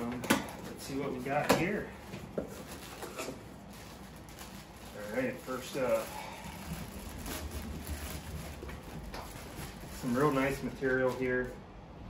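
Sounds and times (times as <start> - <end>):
plastic bag crinkling: 0.0 - 11.6
steady low hum: 0.0 - 12.0.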